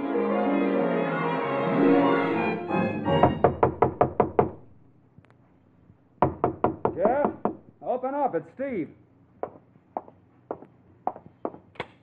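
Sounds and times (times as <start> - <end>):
orchestral music cue: 0.0 - 3.5
knocks on a door: 3.2 - 4.6, 6.2 - 7.7.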